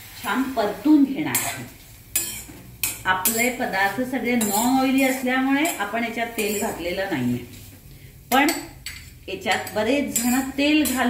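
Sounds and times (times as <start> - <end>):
steel spoon scraping metal pan: 1.3 - 7.0, 8.3 - 11.0.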